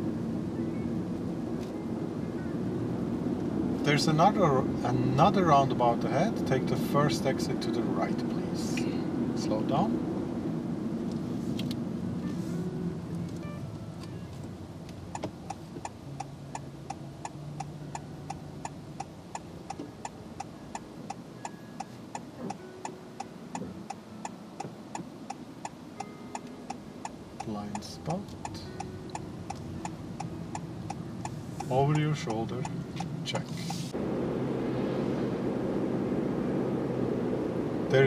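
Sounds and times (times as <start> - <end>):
car engine and road noise: 0.0 - 38.0
turn signal indicator ticking: 13.1 - 33.8.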